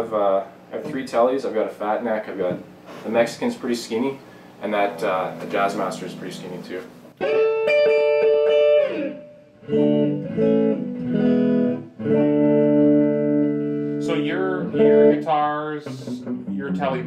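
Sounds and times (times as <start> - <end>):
person speaking: 0.0 - 7.0
electric guitar chords: 4.8 - 17.0.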